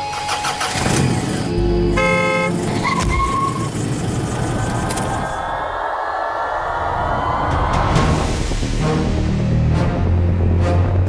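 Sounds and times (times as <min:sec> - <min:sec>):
car horn blast: 0:01.5 - 0:03.3.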